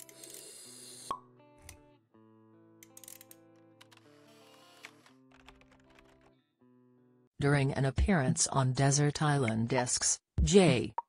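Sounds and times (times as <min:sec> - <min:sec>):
quiet sustained background music: 0:00.0 - 0:07.6.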